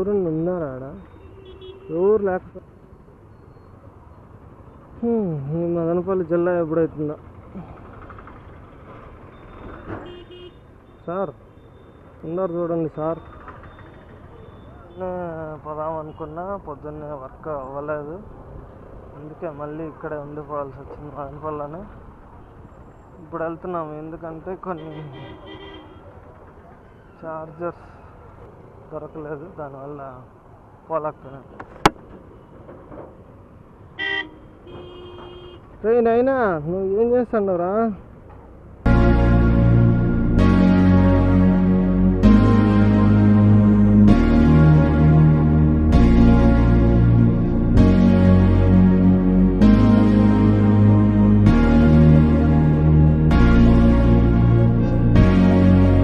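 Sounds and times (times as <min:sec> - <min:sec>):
low rumble of traffic: 0:00.0 - 0:56.0
road noise: 0:00.0 - 0:56.0
vehicle horn short beeps: 0:01.0 - 0:02.0
vehicle horns honking: 0:01.0 - 0:02.2, 0:09.9 - 0:11.0, 0:24.8 - 0:26.1, 0:34.0 - 0:35.7.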